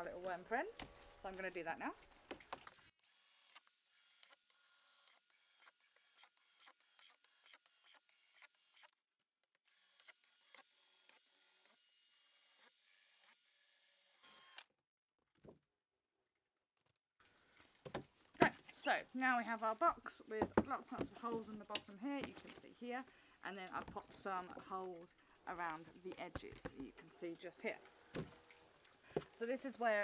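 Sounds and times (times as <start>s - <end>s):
cordless drill boring plastic: 3.0s - 9.0s, 9.6s - 14.7s.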